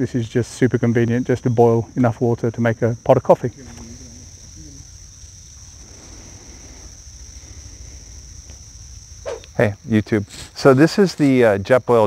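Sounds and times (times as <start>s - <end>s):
insects droning: 0.0s - 12.0s.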